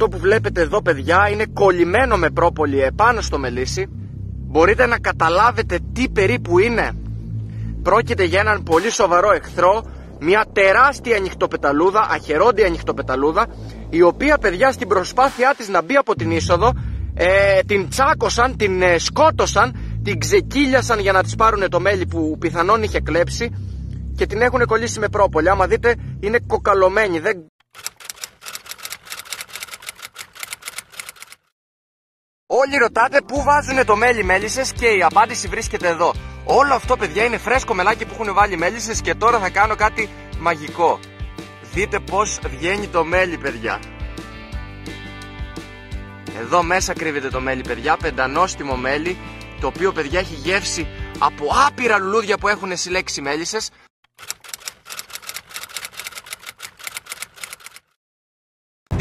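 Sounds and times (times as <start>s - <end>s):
typewriter key clicks: 27.8s - 31.4s, 54.2s - 57.9s.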